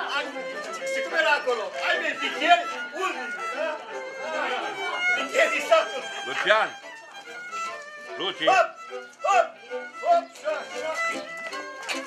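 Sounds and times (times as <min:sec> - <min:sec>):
people talking: 0:00.0 - 0:11.3
violin playing folk dance tune: 0:00.0 - 0:12.0.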